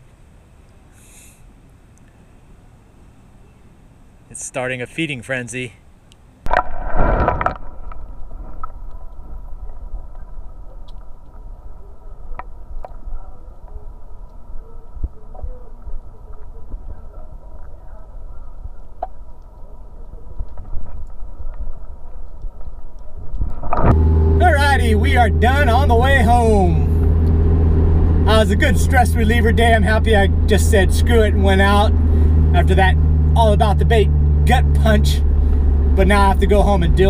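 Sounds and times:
muffled underwater noise: 8.9s - 34.0s
water rushing: 23.6s - 37.0s.

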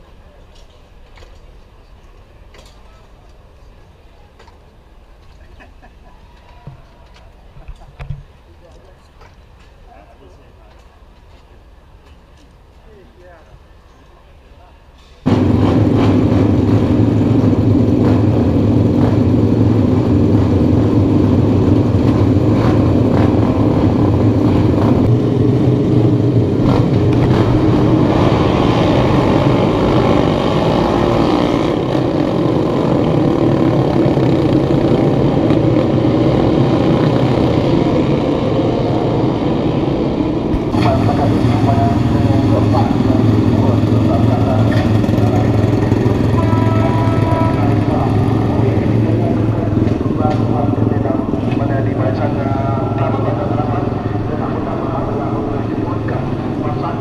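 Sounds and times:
motorcycle engines revving: 15.2s - 57.0s.

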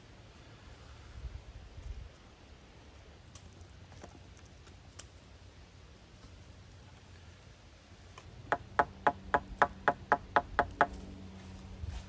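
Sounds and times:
sharp knocks: 8.5s - 11.0s.

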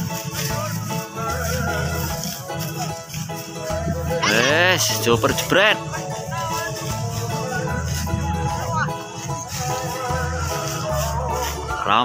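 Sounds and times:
music with long held notes: 0.0s - 12.0s
deep bass line: 3.6s - 12.0s.

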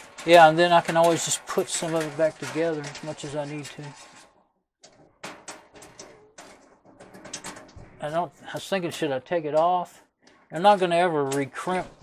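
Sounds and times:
metal parts clicking and knocking: 0.0s - 8.0s.

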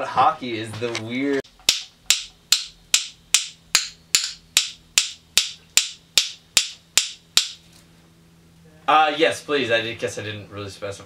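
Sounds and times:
drumsticks clicking: 1.6s - 7.6s.

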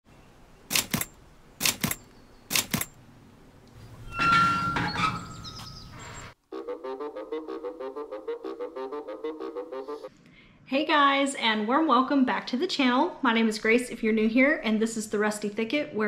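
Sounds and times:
iron gate creaking open: 3.8s - 6.4s.

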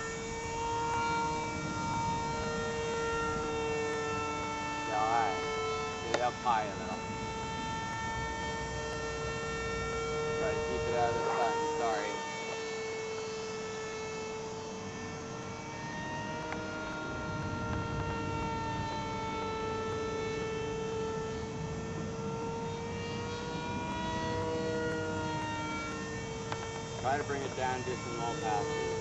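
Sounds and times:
model aircraft motor whine: 0.0s - 29.0s.

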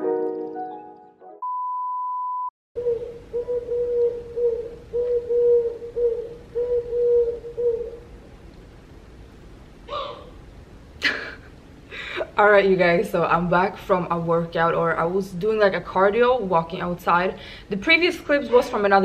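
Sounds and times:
background music: 0.0s - 1.4s
outdoor background noise: 2.8s - 19.0s.

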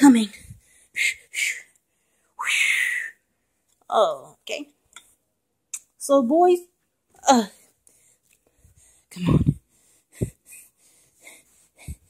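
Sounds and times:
breathy puffs on microphone: 8.6s - 12.0s.

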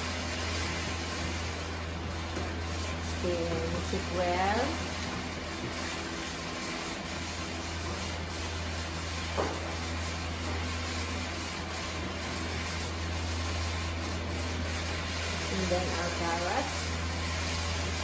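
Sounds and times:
food frying in a pan: 0.0s - 18.0s.

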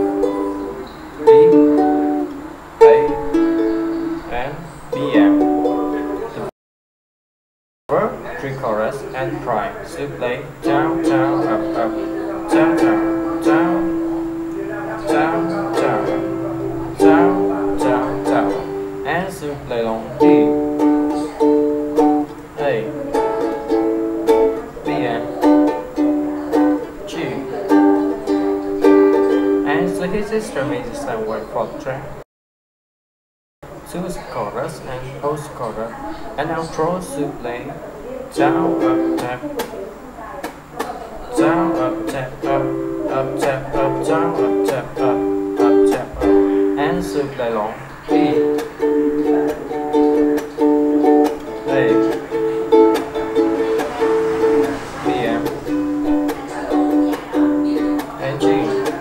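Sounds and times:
ukulele chords strummed: 0.0s - 6.5s, 7.9s - 31.4s, 38.3s - 59.0s.

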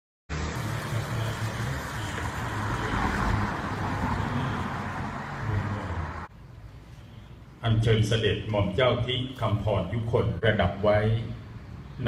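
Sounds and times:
low traffic-like rumble: 0.3s - 12.0s.

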